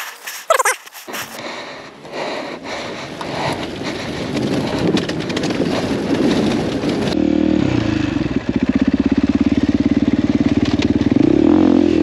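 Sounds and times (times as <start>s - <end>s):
dog yelping: 0.4s - 0.9s.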